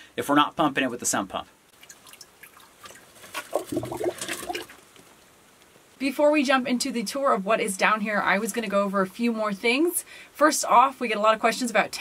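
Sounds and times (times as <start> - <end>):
water sloshing and dripping: 1.7 - 4.8.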